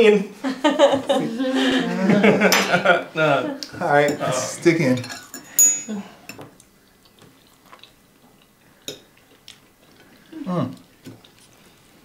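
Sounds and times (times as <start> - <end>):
forks clinking on plates: 5.0 - 6.5.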